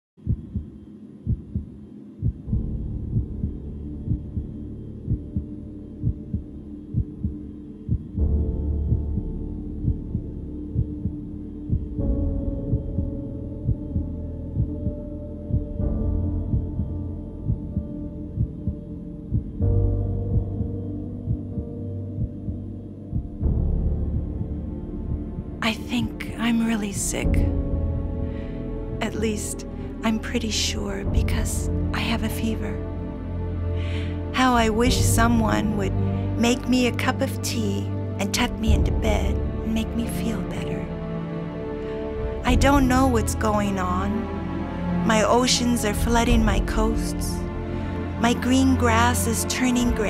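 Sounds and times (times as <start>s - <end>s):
heartbeat thumps: 0.2s - 50.0s
low steady drone: 0.2s - 50.0s.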